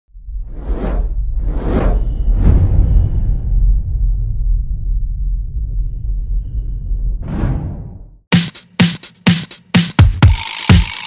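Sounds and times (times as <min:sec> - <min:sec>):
deep low rumble: 0:00.1 - 0:08.2.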